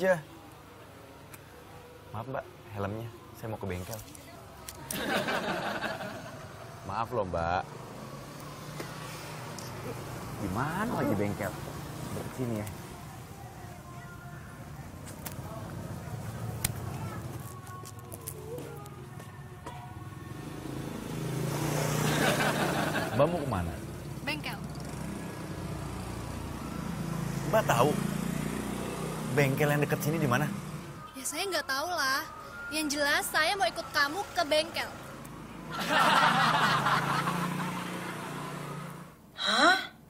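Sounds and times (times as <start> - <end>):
vehicle engine passing: 5.0 - 13.2, 19.9 - 31.1, 33.6 - 39.2.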